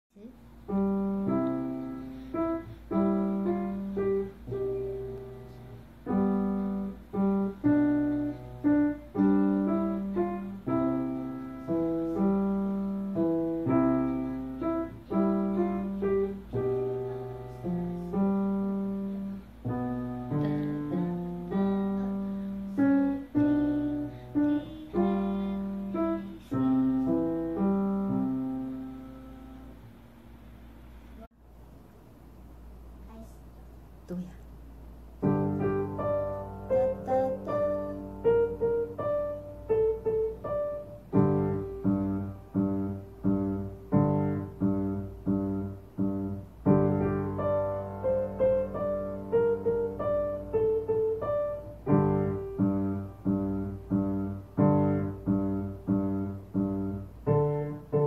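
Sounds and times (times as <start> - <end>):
faint low hum: 0.1 - 58.0
grand piano melody: 0.4 - 30.4, 35.1 - 58.0.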